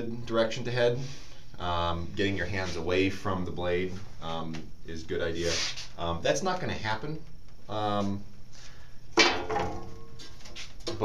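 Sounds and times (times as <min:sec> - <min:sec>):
metal cover knocking: 0:09.2 - 0:10.0.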